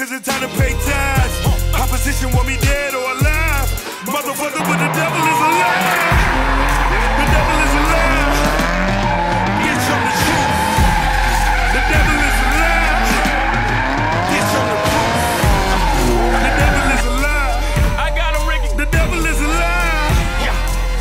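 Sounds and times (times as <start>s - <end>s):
car engine revving: 0.9s - 21.0s
tyres squealing: 1.8s - 18.5s.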